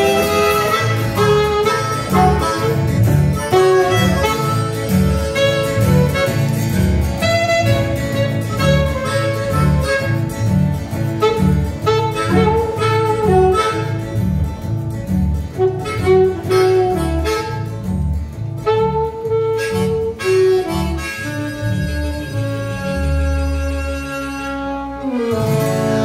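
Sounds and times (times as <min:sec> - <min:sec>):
harmonica: 0:00.0 - 0:14.6, 0:18.6 - 0:26.0
saxophone: 0:00.0 - 0:14.6, 0:15.2 - 0:26.0
plucked double bass: 0:00.0 - 0:26.0
strummed acoustic guitar: 0:00.0 - 0:26.0.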